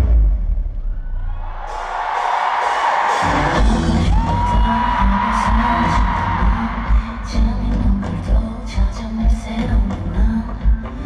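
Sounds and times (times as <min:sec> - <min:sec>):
audience screaming: 0:00.9 - 0:07.4
loud pop music: 0:01.6 - 0:11.0.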